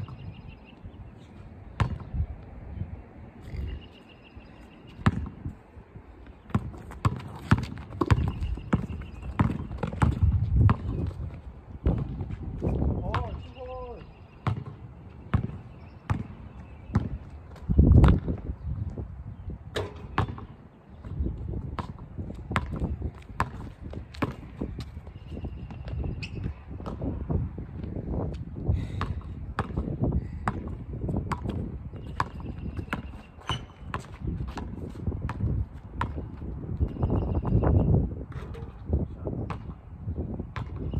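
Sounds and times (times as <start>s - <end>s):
basketball bouncing on asphalt: 0.0s - 0.8s, 1.5s - 2.6s, 3.9s - 19.0s, 19.7s - 40.9s.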